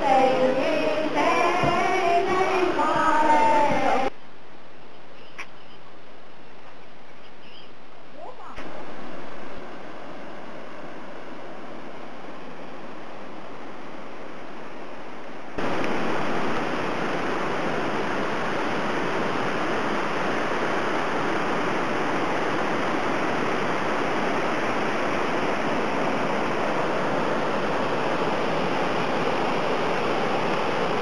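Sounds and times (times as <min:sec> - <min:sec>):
water rushing: 0:00.0 - 0:04.1, 0:08.1 - 0:31.0.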